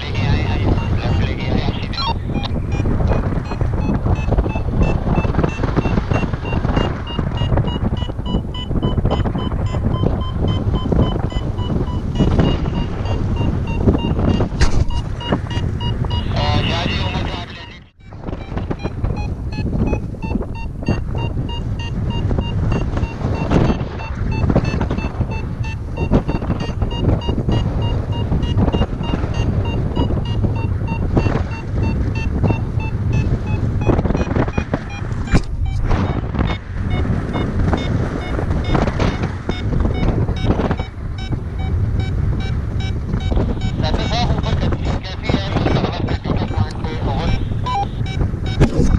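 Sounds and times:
variometer rapid beeping: 0.0s - 48.9s
wind on microphone: 0.0s - 48.9s.

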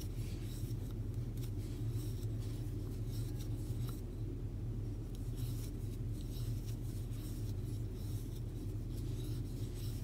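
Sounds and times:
steady low hum: 0.0s - 10.0s
yarn rubbing over crochet hook: 5.2s - 10.0s.

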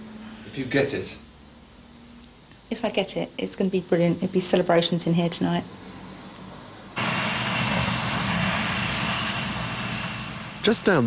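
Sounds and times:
excavator diesel engine running: 7.0s - 11.0s
thin high whine: 7.0s - 11.0s.

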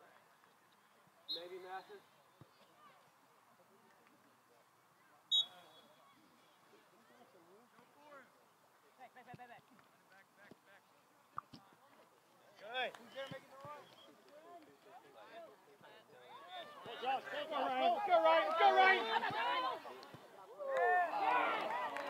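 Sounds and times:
referee's whistle blast: 5.3s - 6.0s.

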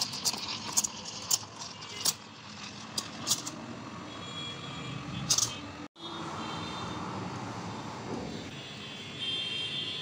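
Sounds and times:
steam wand frothing milk: 0.0s - 3.6s.

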